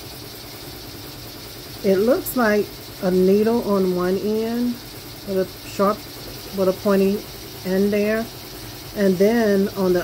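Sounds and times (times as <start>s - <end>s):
embroidery machine humming: 0.0s - 10.0s.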